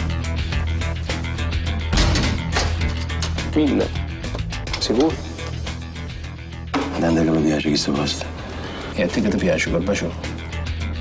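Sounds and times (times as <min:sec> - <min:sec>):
dialogue: 0:02.6 - 0:10.9.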